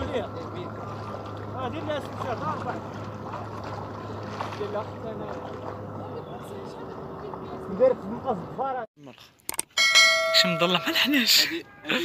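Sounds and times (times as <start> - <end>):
bright bell chime: 9.8 - 11.3.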